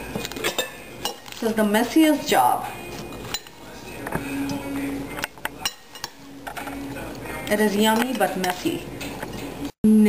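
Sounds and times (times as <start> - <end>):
metal spoon clinking on glass bowl: 0.4 - 1.4, 3.2 - 3.6, 5.6 - 6.8.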